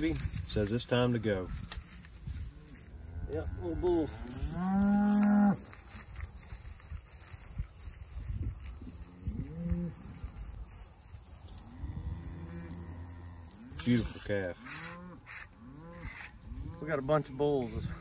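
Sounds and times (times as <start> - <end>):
cow mooing: 2.7 - 5.6, 12.0 - 13.9, 14.6 - 16.9.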